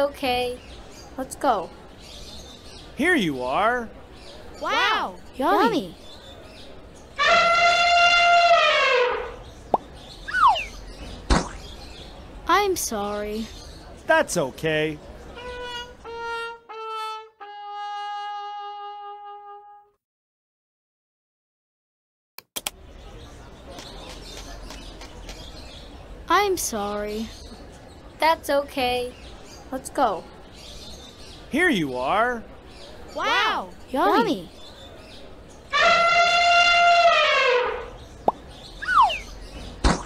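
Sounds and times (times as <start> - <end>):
brass musical sting: 7.2 - 9.4, 35.7 - 37.9
elephant trumpeting: 7.2 - 9.4, 35.7 - 38.0.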